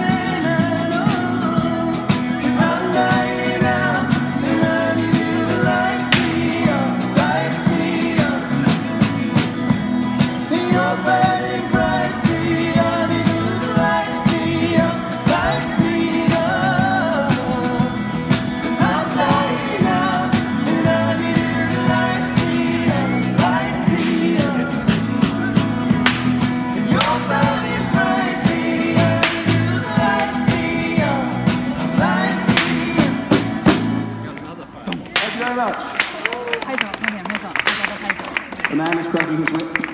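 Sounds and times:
steady drum beat: 0:00.0 - 0:34.1
guitars strumming chords: 0:00.0 - 0:34.4.

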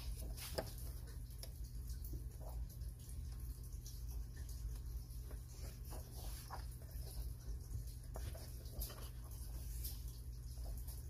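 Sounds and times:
paper rustling: 0:00.0 - 0:01.1, 0:05.1 - 0:11.0.

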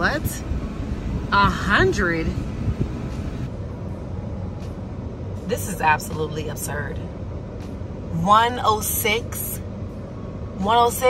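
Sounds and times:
idling car engine rumble and hiss: 0:00.0 - 0:11.0.

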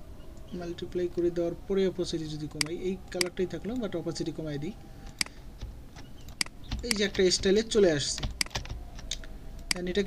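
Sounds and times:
person speaking: 0:00.5 - 0:04.8, 0:06.8 - 0:08.3
computer keyboard clicks: 0:08.2 - 0:09.8.

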